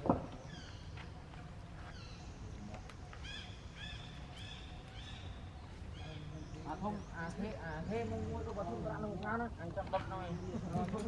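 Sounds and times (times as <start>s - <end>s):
high chirping calls: 0.4s - 8.5s.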